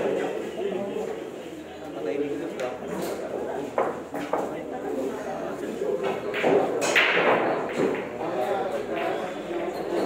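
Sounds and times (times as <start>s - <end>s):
pool balls knocking: 6.0s - 8.3s.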